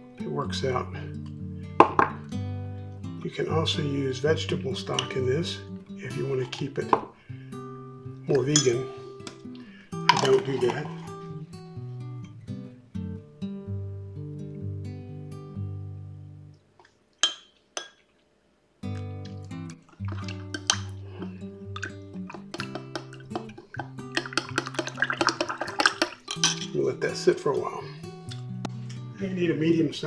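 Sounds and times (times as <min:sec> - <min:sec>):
acoustic guitar music: 0:00.0 - 0:16.6, 0:18.8 - 0:30.0
metal spoon clinking in glass: 0:08.5 - 0:08.8, 0:10.1 - 0:11.1, 0:22.6 - 0:26.7.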